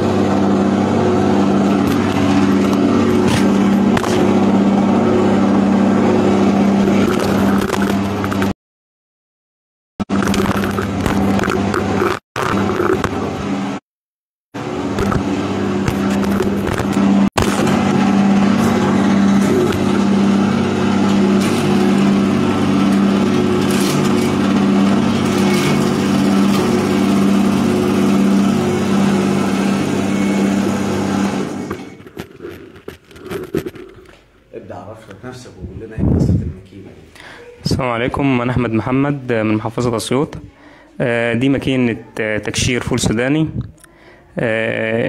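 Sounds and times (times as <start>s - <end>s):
machine motor hum: 0.0s - 8.5s, 14.6s - 34.0s.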